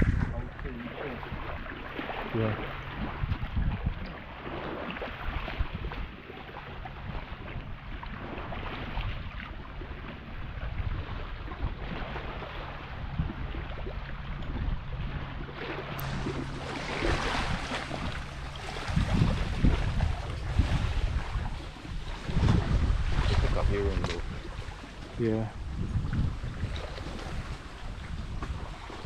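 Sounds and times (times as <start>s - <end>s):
small waves lapping on rocks: 0.0s - 29.0s
wind buffeting microphone: 0.0s - 29.0s.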